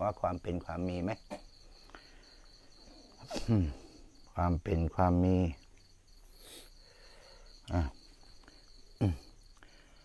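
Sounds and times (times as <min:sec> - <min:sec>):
crickets chirping: 0:00.0 - 0:10.0.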